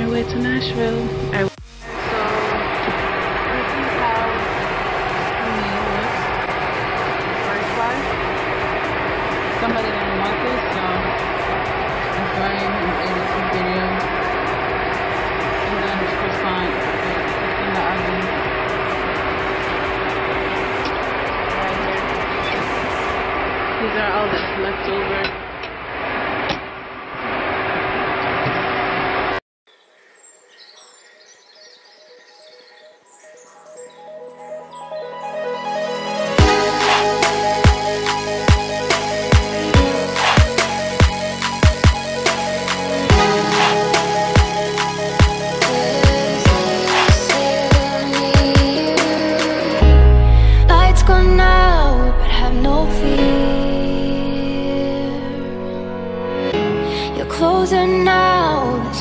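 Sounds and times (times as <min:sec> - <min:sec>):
soft electronic music: 0:00.0 - 0:24.0, 0:30.2 - 0:59.0
airliner cabin noise: 0:00.0 - 0:25.3.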